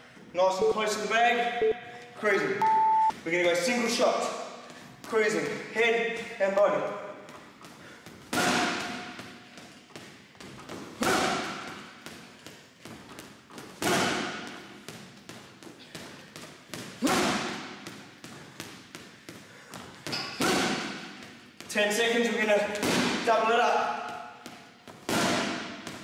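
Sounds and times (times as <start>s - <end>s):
hard punches echoing: 5.0s - 26.0s.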